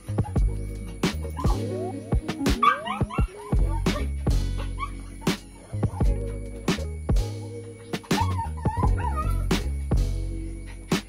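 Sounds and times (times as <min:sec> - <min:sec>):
background music with beat: 0:00.0 - 0:11.0
puppy whimpering: 0:01.4 - 0:05.3, 0:08.1 - 0:09.5.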